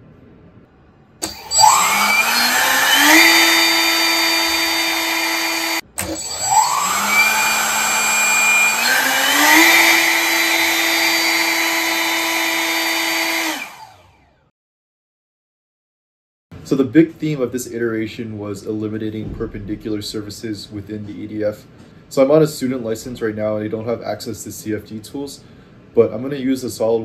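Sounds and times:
electric ducted fan whining: 1.1s - 14.2s.

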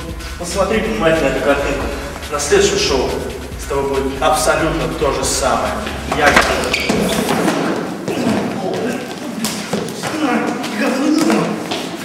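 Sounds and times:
men shouting: 0.4s - 8.6s.

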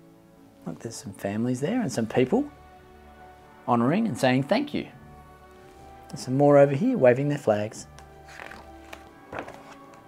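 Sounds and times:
soft background music: 0.0s - 10.0s
paper page rustling: 8.2s - 10.0s.

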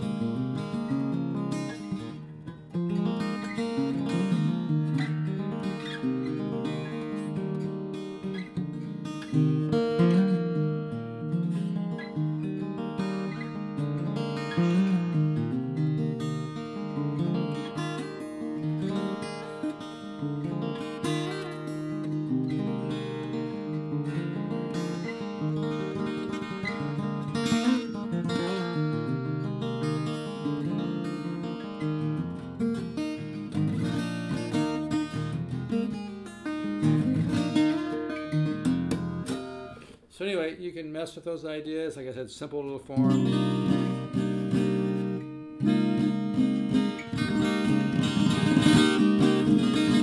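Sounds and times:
fingerstyle acoustic guitar: 0.0s - 40.2s, 42.9s - 50.0s.

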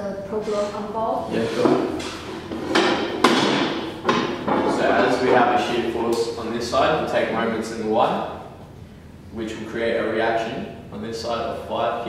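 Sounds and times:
sharp knock: 1.7s - 4.8s.

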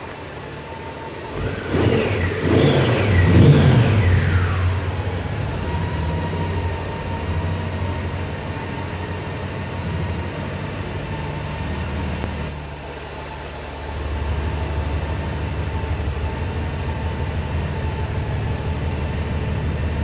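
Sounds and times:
motorcycle engine revving and idling: 0.0s - 20.0s
thin steady whine: 0.0s - 20.0s.

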